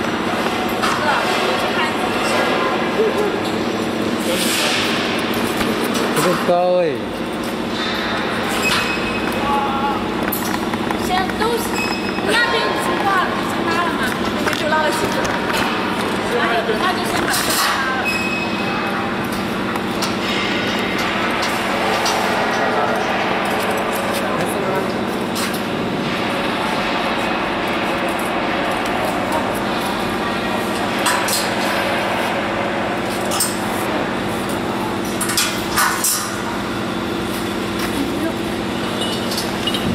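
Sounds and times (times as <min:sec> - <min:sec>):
steady low hum: 0:00.0 - 0:39.9
steady mechanical rushing noise: 0:00.0 - 0:39.9.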